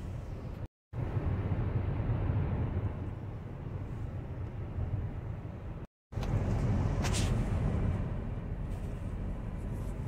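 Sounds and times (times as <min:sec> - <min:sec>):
car engine inside cabin: 0:00.0 - 0:10.0.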